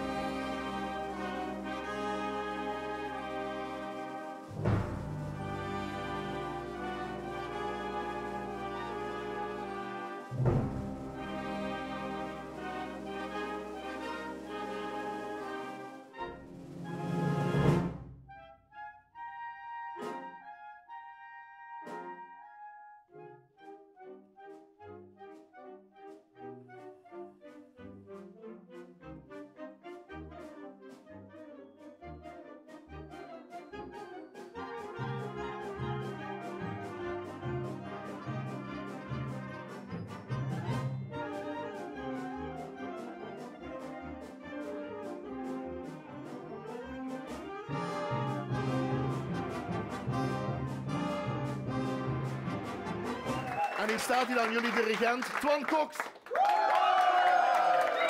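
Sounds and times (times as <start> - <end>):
wind band playing: 0.0 - 53.9.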